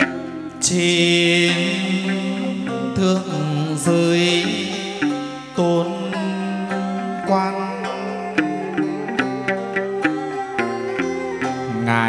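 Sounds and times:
plucked lute notes: 0.0 - 12.0.

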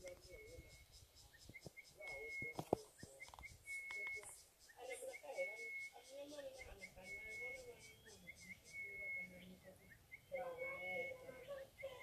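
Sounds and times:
sharp clicks: 1.5 - 4.4
hushed whispering voices: 1.8 - 12.0.

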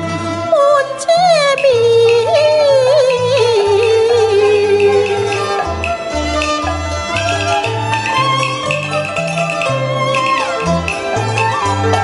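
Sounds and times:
woman singing ornamented melody: 0.0 - 6.6.

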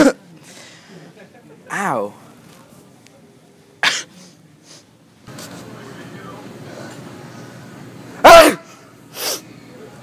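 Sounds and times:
person sneezing loudly: 3.8 - 4.2, 8.2 - 9.4.

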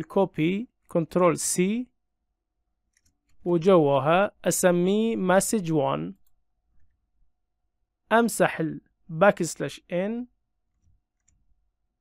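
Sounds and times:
computer keyboard clicks: 10.7 - 11.5.

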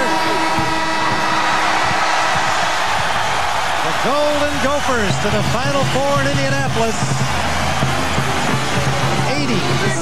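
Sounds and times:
arena buzzer horn: 0.0 - 3.7
crowd cheering: 0.0 - 10.0.

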